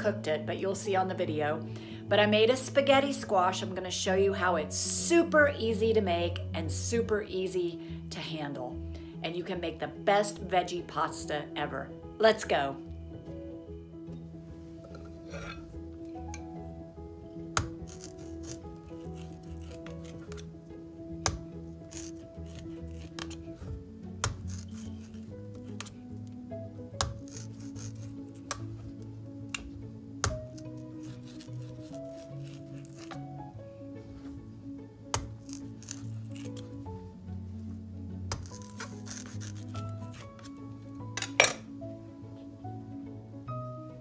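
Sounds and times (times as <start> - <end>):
background music with held notes: 0.0 - 44.0
knife stabbing into squash rind: 17.5 - 20.5, 21.1 - 26.3, 27.0 - 33.3, 35.1 - 36.9, 38.3 - 41.6.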